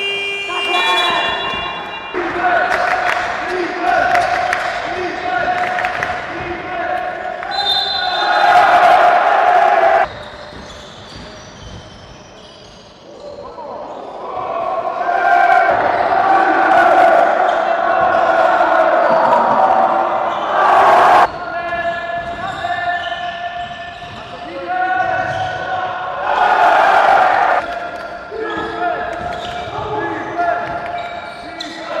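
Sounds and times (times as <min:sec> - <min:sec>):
basketball bouncing on court: 0:10.0 - 0:12.8, 0:21.3 - 0:25.7, 0:27.6 - 0:31.8
players calling out: 0:13.2 - 0:32.0.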